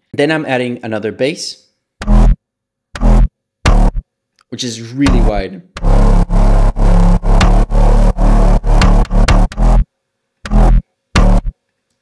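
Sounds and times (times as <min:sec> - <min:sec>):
distorted synth bass stabs: 0:02.0 - 0:02.4, 0:03.0 - 0:04.0, 0:05.1 - 0:09.8, 0:10.5 - 0:11.5.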